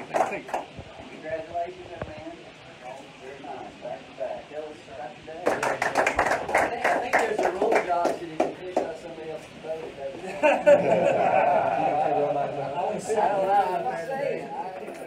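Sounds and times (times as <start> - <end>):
small group clapping: 0.0 - 0.8, 5.4 - 9.0
voices: 0.0 - 15.0.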